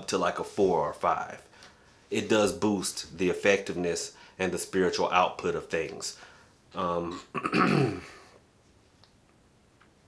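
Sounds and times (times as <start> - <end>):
man saying um: 6.8 - 7.3
man clearing throat: 7.0 - 8.3.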